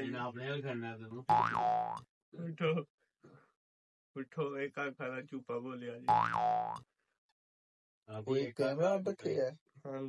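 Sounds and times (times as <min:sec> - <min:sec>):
cartoon springy boing: 0:01.3 - 0:02.1, 0:06.1 - 0:06.8.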